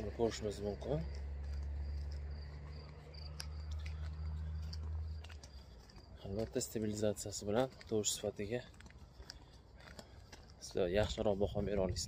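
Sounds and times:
crickets chirping: 0:00.0 - 0:07.6.

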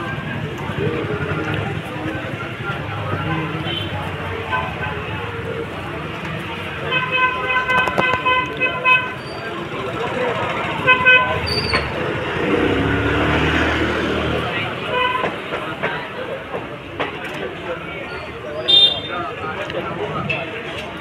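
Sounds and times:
traffic noise: 0:00.0 - 0:21.0
vehicle horns honking: 0:03.6 - 0:04.8, 0:06.8 - 0:09.4, 0:10.8 - 0:11.7, 0:14.8 - 0:15.3, 0:18.6 - 0:19.2
passing vehicle engine: 0:09.4 - 0:15.8.

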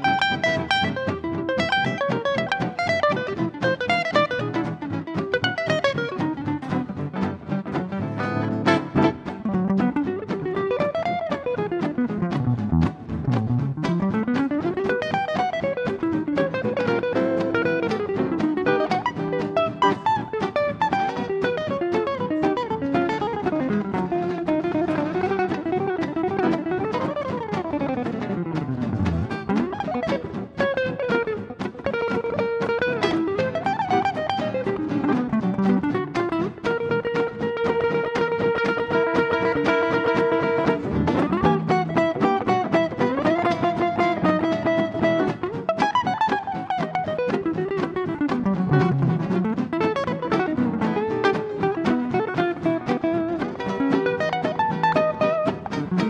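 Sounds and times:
lead guitar solo: 0:00.0 - 0:56.0
rhythm guitar chords: 0:00.0 - 0:56.0.

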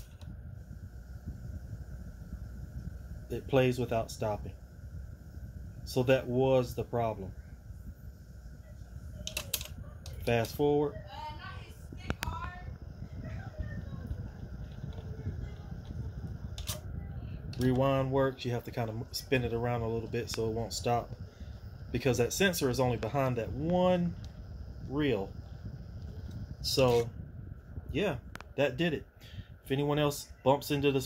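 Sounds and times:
cassette deck tape running: 0:00.0 - 0:28.9.

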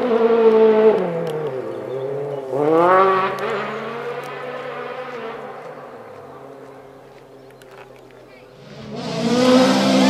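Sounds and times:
rally car engine: 0:00.0 - 0:10.0
road noise: 0:00.0 - 0:10.0.

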